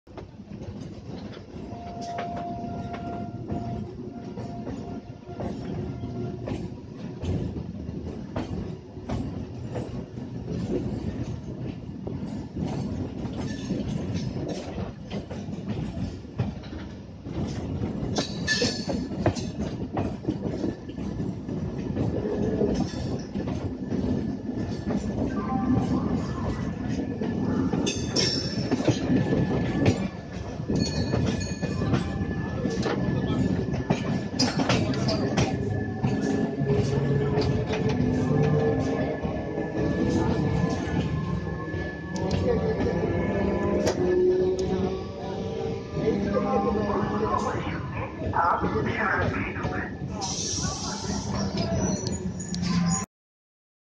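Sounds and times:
train wheels rumbling on rails: 0.1 - 53.1.

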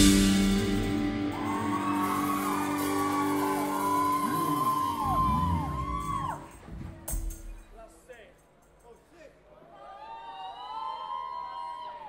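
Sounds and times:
rock band chord ringing: 0.0 - 6.4
singer's wordless wail: 1.4 - 6.6.

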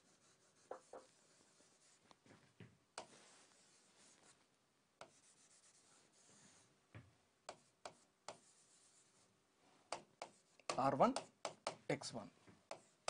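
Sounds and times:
stylus rubbing on screen: 0.0 - 2.4, 3.0 - 6.7, 7.5 - 9.3
stylus tapping on screen: 9.9 - 11.9.

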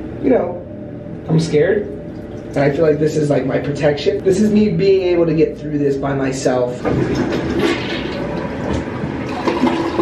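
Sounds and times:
water rushing in plumbing: 6.7 - 10.0.

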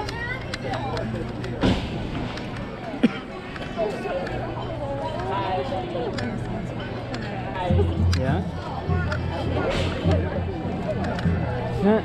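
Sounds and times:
crowd talking indistinctly: 0.0 - 12.0.

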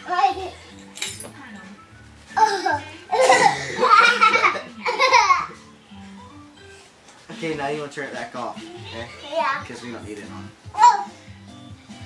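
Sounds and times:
children's tv music: 0.0 - 12.0.

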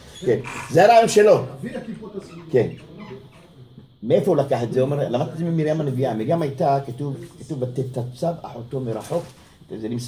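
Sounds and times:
faint murmuring: 0.0 - 10.0.

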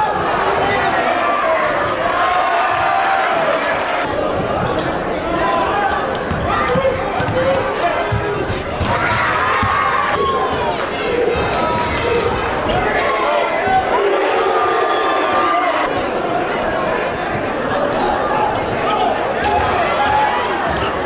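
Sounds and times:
crowd talking and shouting: 0.0 - 21.0.

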